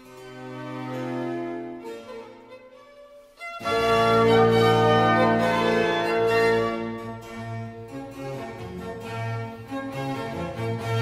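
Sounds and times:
string orchestra playing fast: 0.0s - 11.0s.

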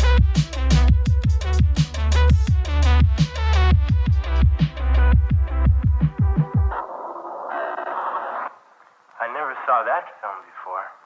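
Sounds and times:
radio static burst: 6.7s - 10.9s.

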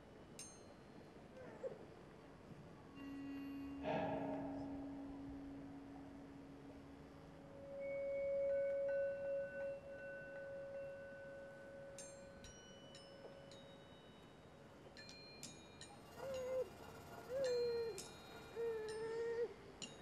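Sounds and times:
high metallic clinks: 12.0s - 20.0s.

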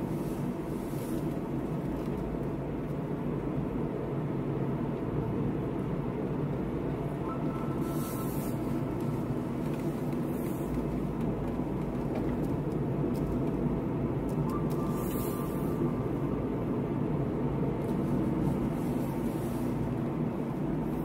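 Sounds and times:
car engine and tyre noise: 0.0s - 21.0s.

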